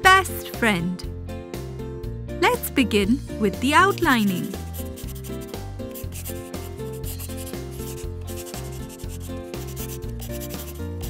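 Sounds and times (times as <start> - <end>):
marker scratching on paper: 3.8 - 11.0.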